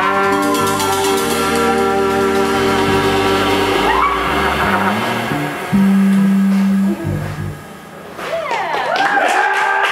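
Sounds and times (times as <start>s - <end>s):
electric band chord ringing: 0.0s - 8.2s
low electric bass notes: 0.0s - 8.2s.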